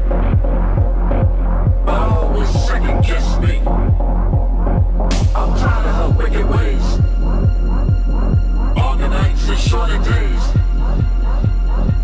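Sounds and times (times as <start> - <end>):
deep sustained bass: 0.0 - 12.0
techno kick drum: 0.0 - 12.0.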